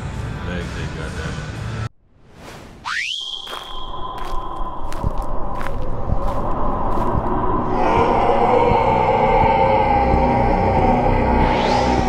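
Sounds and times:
high rising tone: 0:02.8 - 0:12.0.

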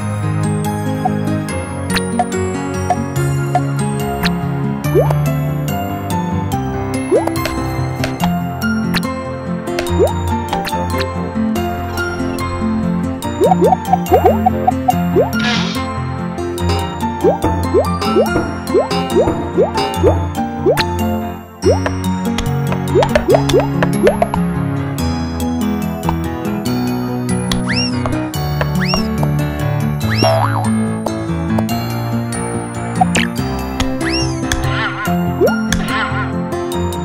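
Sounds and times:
bouncy cartoon music: 0:00.0 - 0:05.7, 0:06.8 - 0:37.0.

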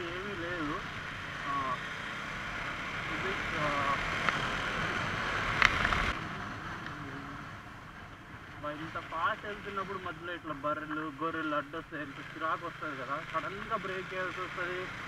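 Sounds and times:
motorcycle engine humming: 0:00.0 - 0:15.0.

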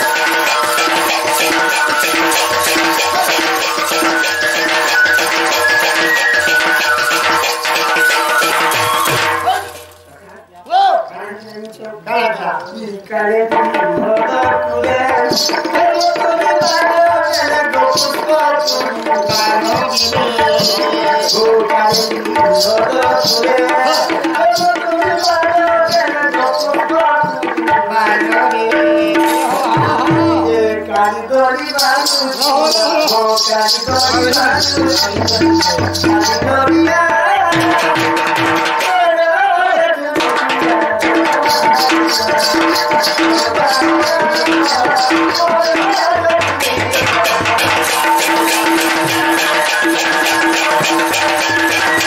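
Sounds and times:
rattling beat: 0:00.0 - 0:10.1, 0:12.6 - 0:39.3, 0:40.0 - 0:52.0
music: 0:00.0 - 0:10.2, 0:11.4 - 0:52.0
folk melody: 0:00.0 - 0:10.4, 0:40.2 - 0:52.0
person shouting: 0:10.7 - 0:11.1.

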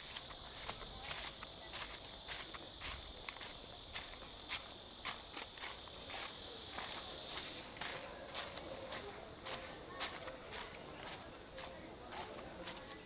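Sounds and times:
high-pitched insect buzz: 0:00.0 - 0:09.0
footsteps: 0:00.0 - 0:13.0.

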